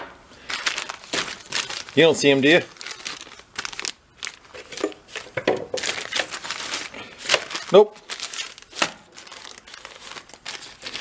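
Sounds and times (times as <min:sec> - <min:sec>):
plastic bags crinkling: 0:00.4 - 0:11.0.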